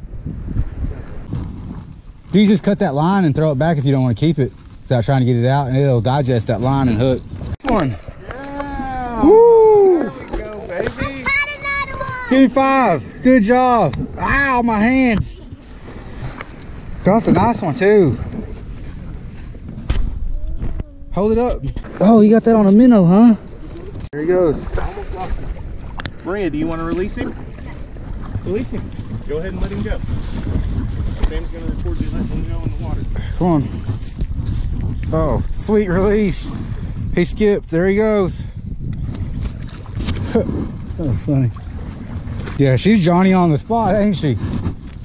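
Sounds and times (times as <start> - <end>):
wind noise on microphone: 0.0 - 45.0.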